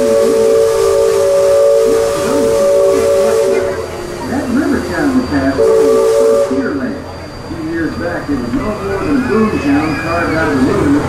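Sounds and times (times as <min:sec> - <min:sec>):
steam whistle blowing: 0:00.0 - 0:10.3
steam hissing: 0:00.0 - 0:11.0.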